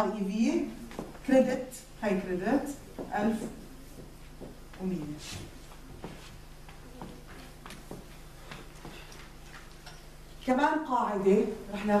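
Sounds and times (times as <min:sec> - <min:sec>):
low hum of room noise: 0:00.0 - 0:12.0.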